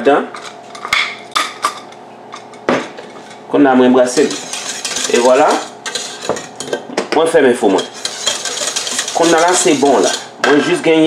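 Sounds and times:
pepper mill grinding: 4.2s - 6.8s, 7.8s - 10.3s.

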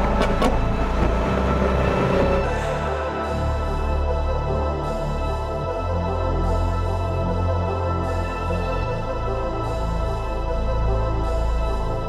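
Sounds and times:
car and road noise: 0.0s - 3.0s
background music: 0.0s - 12.0s.

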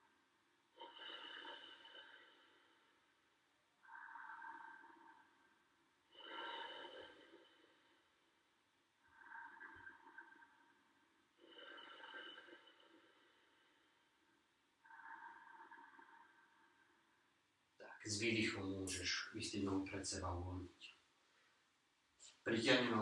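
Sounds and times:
man breathing slowly: 0.6s - 3.2s, 3.8s - 17.2s.

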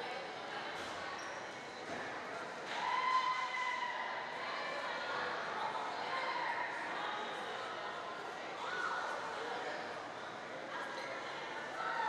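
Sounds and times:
voices and chatter in gymnasium: 0.0s - 12.0s.

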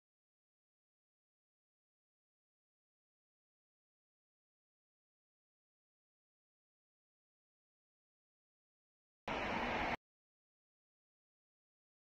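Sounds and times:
short burst of noise: 9.3s - 10.0s.

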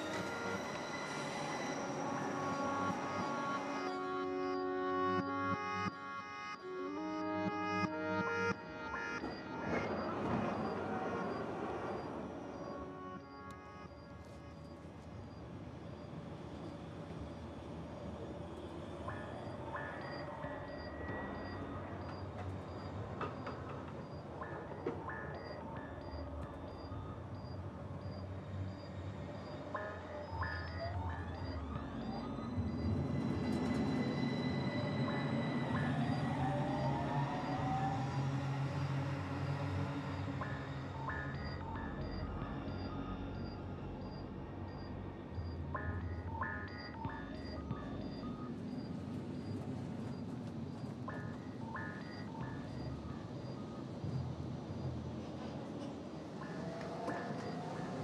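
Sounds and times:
metro train rumble: 0.0s - 58.0s
sparse music: 0.0s - 58.0s
rising motor whine: 31.2s - 43.5s.

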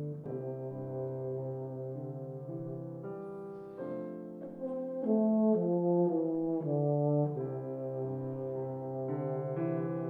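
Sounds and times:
piano accompaniment: 0.0s - 10.0s.

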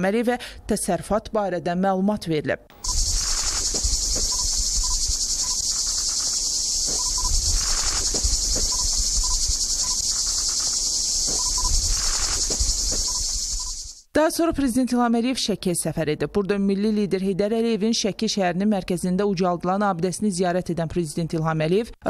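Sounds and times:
insects buzzing shrilly: 2.7s - 14.1s.

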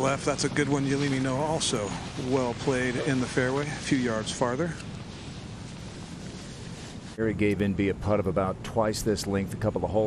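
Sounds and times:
wind hiss on microphone: 0.0s - 10.0s.

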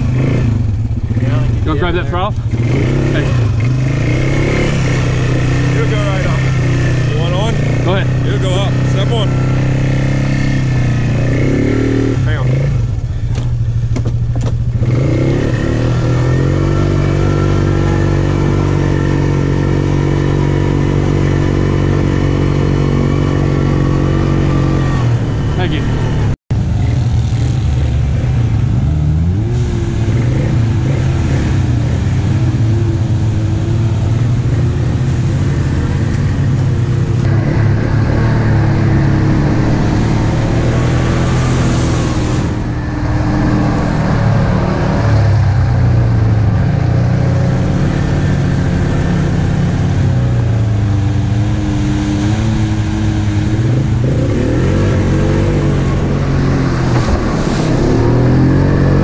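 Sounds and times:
atv engine running: 0.0s - 59.0s.

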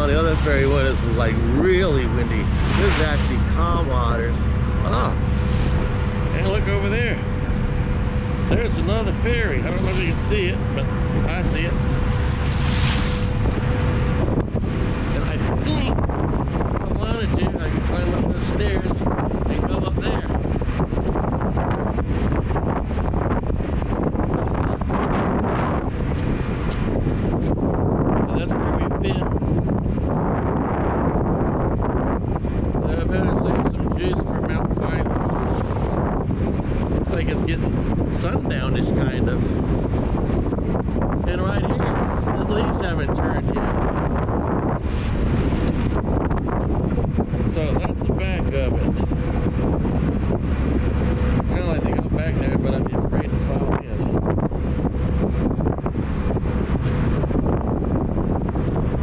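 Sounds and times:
choppy water wash: 0.0s - 59.0s
steady low rumble: 0.0s - 59.0s
wind buffeting microphone: 0.0s - 59.0s.

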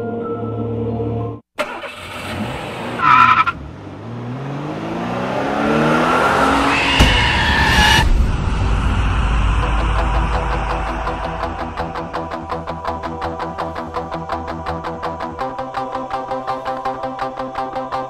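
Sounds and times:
car engine revving: 1.6s - 15.2s
heavy rumble: 6.8s - 13.9s.

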